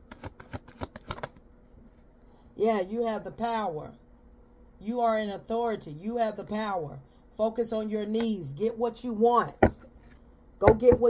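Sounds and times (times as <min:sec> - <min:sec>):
cards being shuffled: 0:00.0 - 0:02.1.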